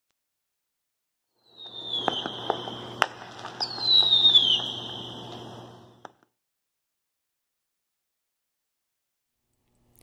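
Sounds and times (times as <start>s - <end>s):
whistling firework shells: 1.3s - 6.3s
firework cracks and bangs: 1.4s - 6.3s.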